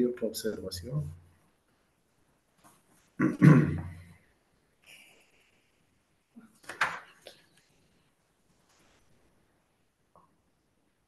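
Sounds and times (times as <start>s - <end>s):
person coughing: 3.2s - 4.0s.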